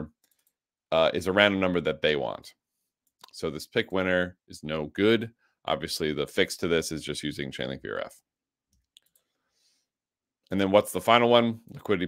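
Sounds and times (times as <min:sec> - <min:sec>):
computer mouse click: 0:08.7 - 0:09.3.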